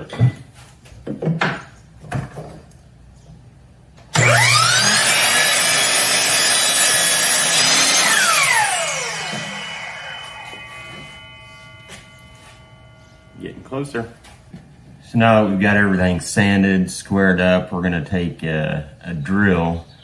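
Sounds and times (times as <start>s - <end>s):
miter saw whining: 4.1s - 13.9s.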